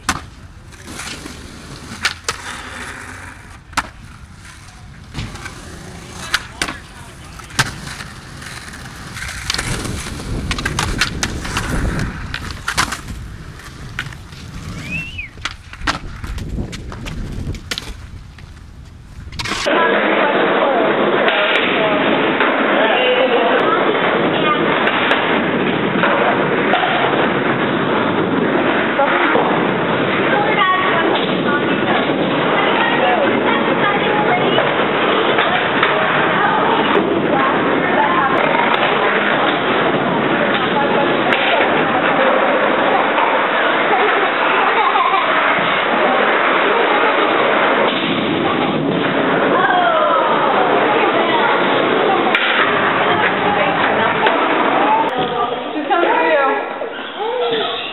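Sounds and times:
skateboard wheels rolling on concrete: 0.0 - 57.9
muffled din of voices: 28.9 - 57.9.

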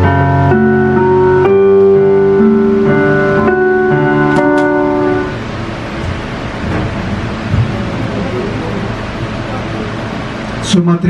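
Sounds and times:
room noise hiss and rumble: 0.0 - 11.0
microphone thump: 6.0 - 8.0.

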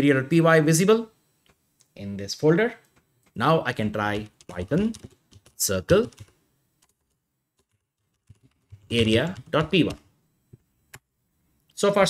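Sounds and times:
person speaking: 1.9 - 6.4, 8.5 - 10.1
typing on computer keyboard: 2.8 - 10.1.

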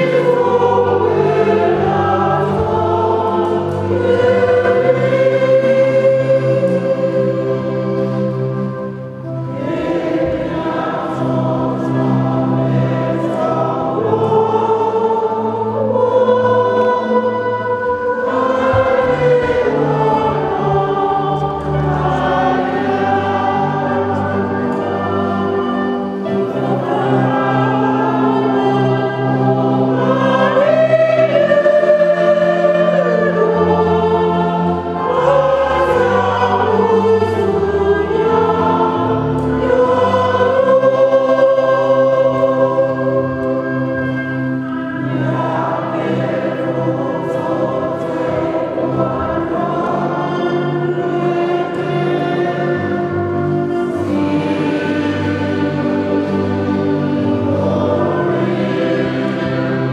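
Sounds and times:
choir singing a slow hymn: 0.0 - 59.9
low steady accompaniment: 0.0 - 59.9.

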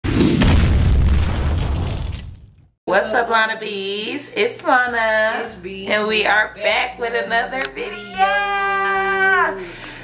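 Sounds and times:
deep boom hit with crack: 0.0 - 2.6.

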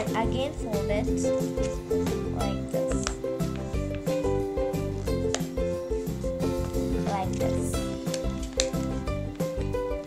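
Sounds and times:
music with sustained tones and beat: 0.0 - 10.0.

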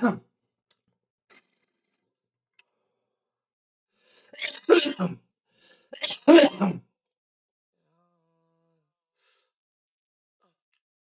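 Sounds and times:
man coughing: 4.4 - 5.2, 6.0 - 6.8.

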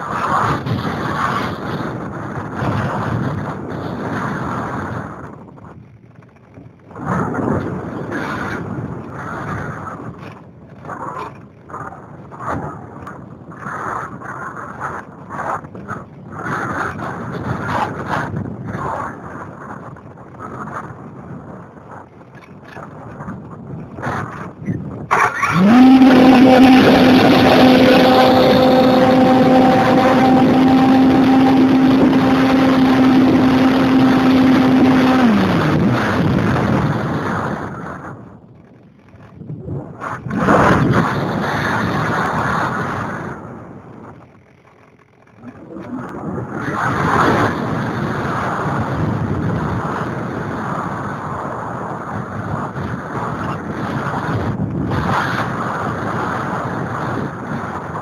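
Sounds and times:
wind rushing over microphone: 0.0 - 58.0
electric motor and propeller whine: 24.9 - 38.2.

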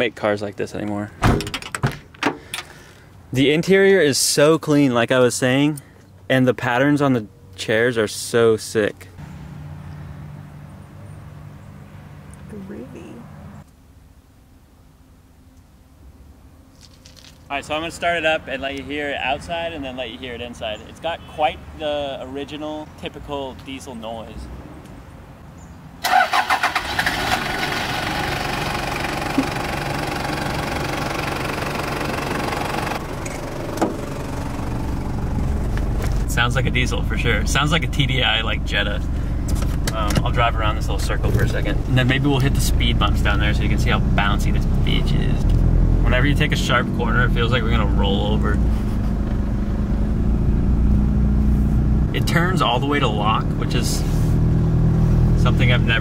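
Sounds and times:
diesel engine cranking and starting: 26.0 - 55.7
diesel engine idling: 26.1 - 53.8.

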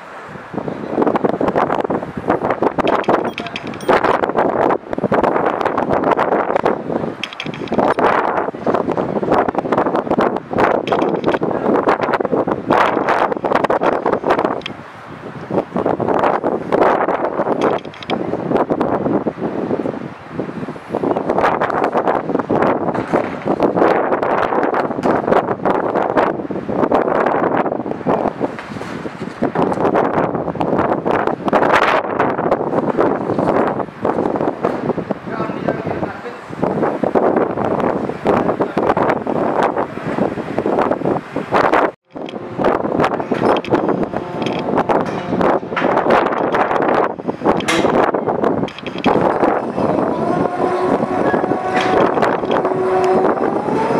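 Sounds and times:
wind buffeting microphone: 0.0 - 53.9.

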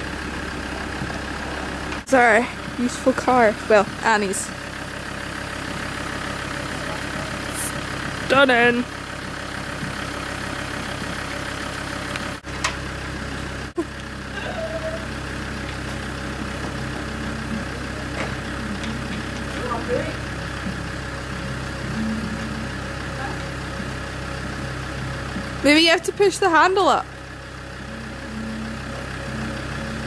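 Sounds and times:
vehicle engine idling: 0.0 - 30.0.

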